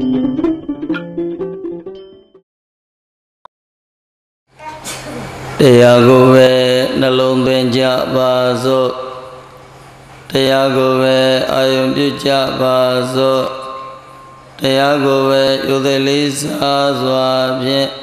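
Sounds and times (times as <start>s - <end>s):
man chanting: 5.6s - 9.6s, 10.3s - 14.0s, 14.6s - 18.0s.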